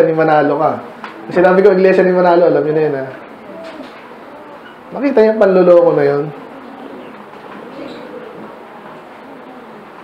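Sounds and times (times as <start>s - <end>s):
bird cooing: 3.1s - 10.0s.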